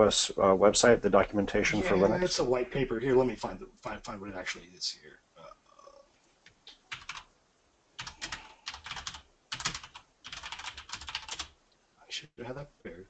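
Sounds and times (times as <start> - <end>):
typing on computer keyboard: 6.9 - 7.3, 8.0 - 11.5.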